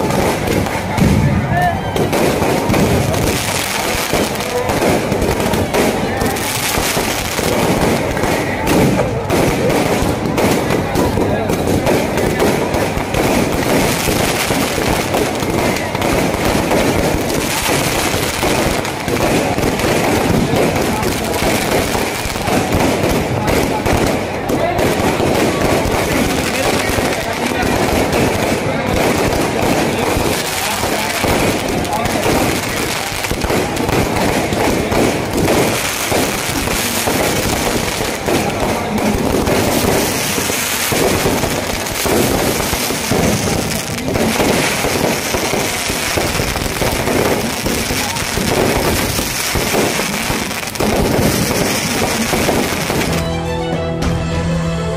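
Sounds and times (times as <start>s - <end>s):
fireworks crackling and banging: 0.0s - 53.8s
crowd voices: 0.0s - 54.9s
music: 53.1s - 54.9s.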